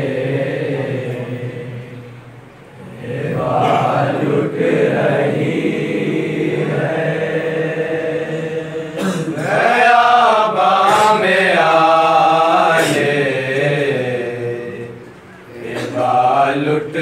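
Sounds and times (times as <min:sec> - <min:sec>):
men singing a lament: 0:02.8 - 0:17.0.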